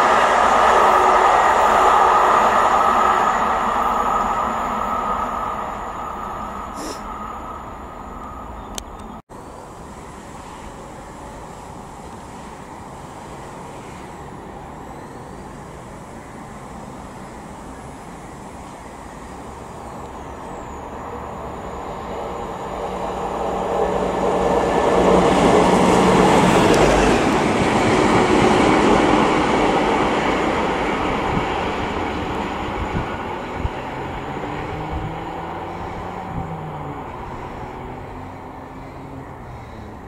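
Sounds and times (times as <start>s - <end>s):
diesel locomotive passing: 0.0s - 40.0s.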